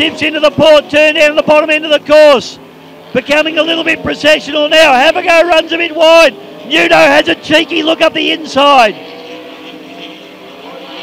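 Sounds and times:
powerboat engines droning: 0:00.0 - 0:11.0.

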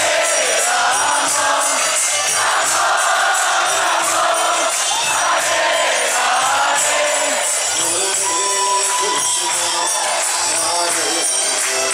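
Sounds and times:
crowd singing a chant: 0:00.0 - 0:11.9
hand cymbals keeping a beat: 0:00.0 - 0:11.9.

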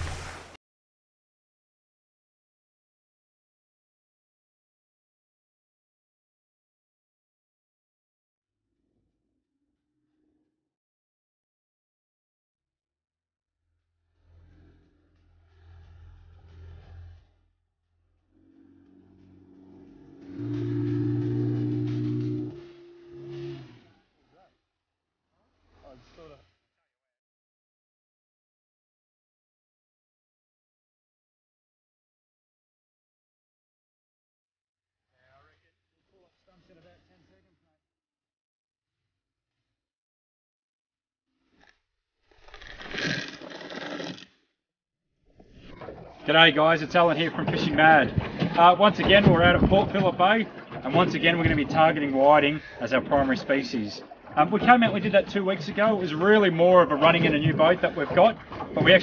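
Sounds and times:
held low chord tones: 0:18.5 - 0:23.8.

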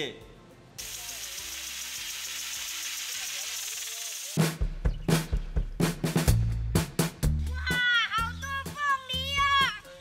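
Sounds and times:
water sprinkler hissing: 0:00.8 - 0:04.6.

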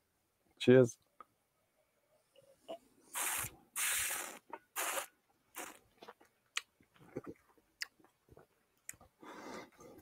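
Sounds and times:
hissing slurps: 0:03.1 - 0:05.8.

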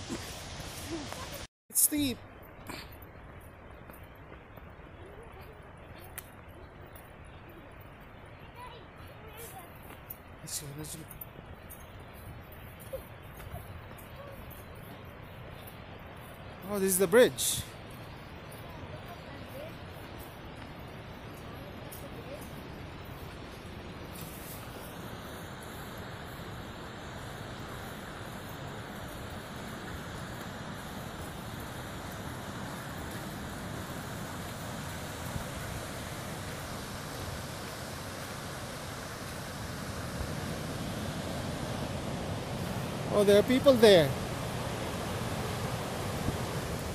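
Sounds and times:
waterfall and river rushing: 0:00.0 - 0:02.3, 0:12.9 - 0:46.9.

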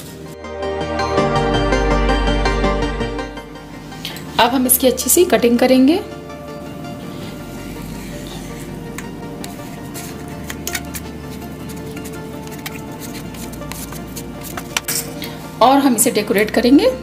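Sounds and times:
soft background music: 0:00.0 - 0:17.0.

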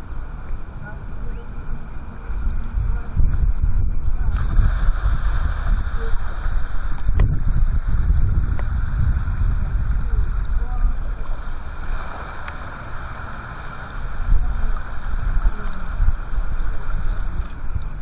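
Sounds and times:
water hissing: 0:00.0 - 0:18.0
wind buffeting microphone: 0:00.0 - 0:18.0.

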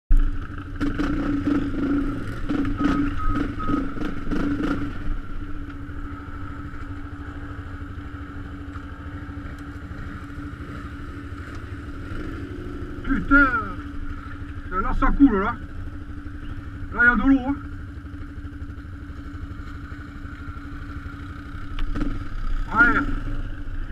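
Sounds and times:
quad bike engine idling: 0:00.1 - 0:23.9.

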